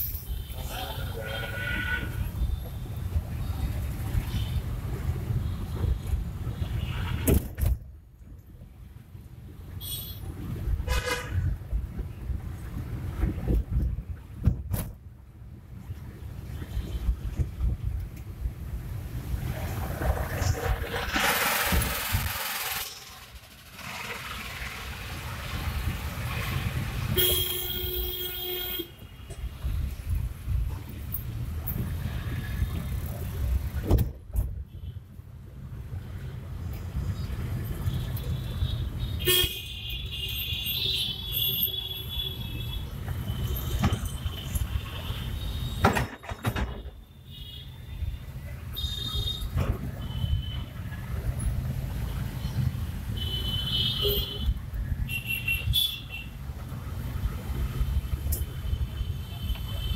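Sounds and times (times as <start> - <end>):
car engine and tyres rumbling: 0.0 - 39.5
vehicle horns honking: 10.9 - 11.4, 27.1 - 29.1, 38.4 - 45.9, 53.2 - 54.5, 55.1 - 56.4.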